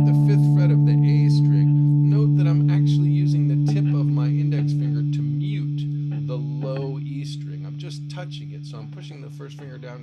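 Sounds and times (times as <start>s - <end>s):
guitar power chord ringing: 0.0s - 10.0s.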